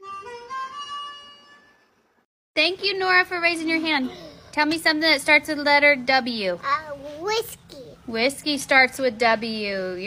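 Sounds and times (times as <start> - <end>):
harmonica phrase: 0.0 - 1.9.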